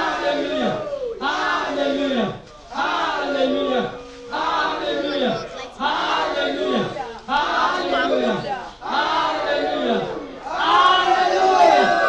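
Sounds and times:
woman praying into microphone: 3.8 - 5.9, 6.6 - 8.8.

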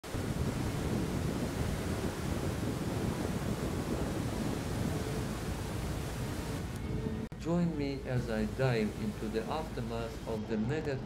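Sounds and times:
floodwater rushing and churning: 0.0 - 6.8
wind buffeting microphone: 0.0 - 11.0.

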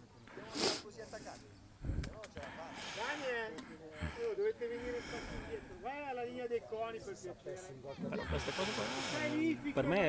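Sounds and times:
breathy hiss on microphone: 0.3 - 5.9, 8.2 - 9.7.

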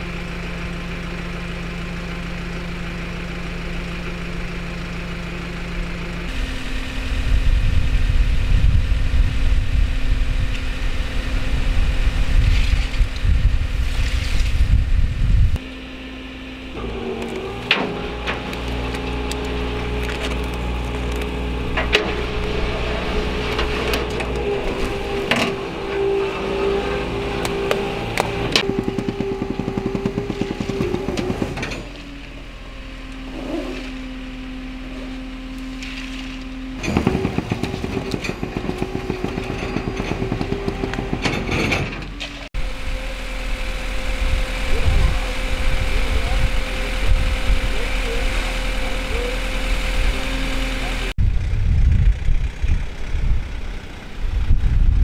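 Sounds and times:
tow truck engine rumbling: 0.0 - 55.0
winch whine: 4.0 - 55.0.

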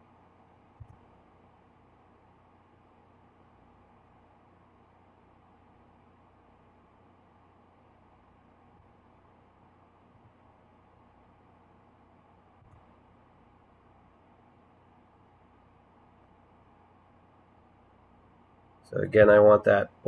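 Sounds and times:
recording hiss and hum: 0.0 - 20.0.

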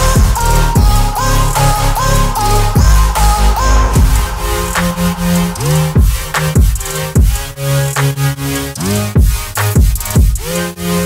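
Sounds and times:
electronic music with a beat: 0.0 - 11.0
deep bass drum hits: 2.8 - 7.6.

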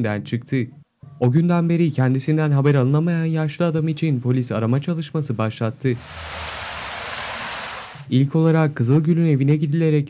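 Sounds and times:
steady outdoor hiss: 5.8 - 8.1.

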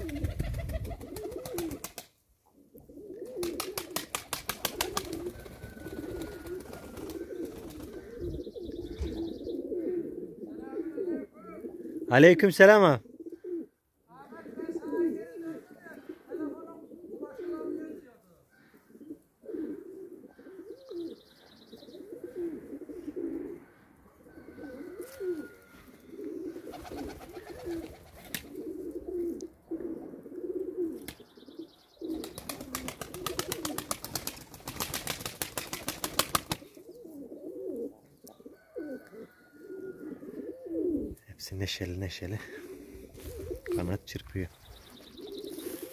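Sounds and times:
pigeon wings flapping: 0.0 - 2.1, 3.3 - 8.1, 26.7 - 28.6, 32.2 - 36.8
pigeons cooing: 0.0 - 13.8, 14.4 - 45.9.

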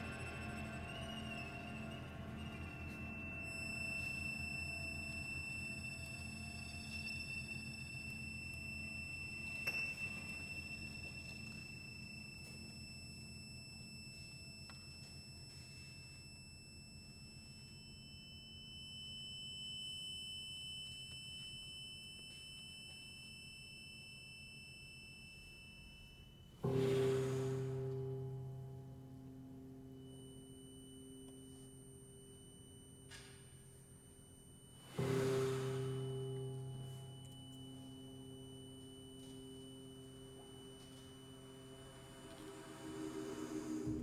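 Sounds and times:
soft sustained chamber music: 0.0 - 20.0, 20.8 - 44.0.

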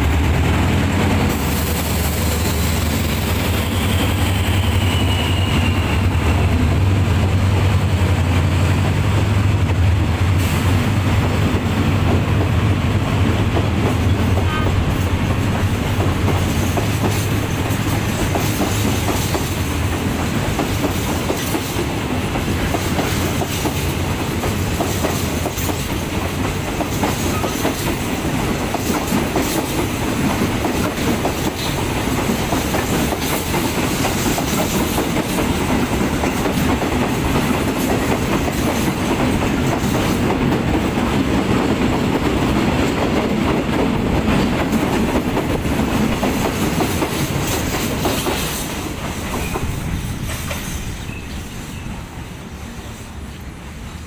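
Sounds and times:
train wheels clacking over rail joints: 0.0 - 51.6.

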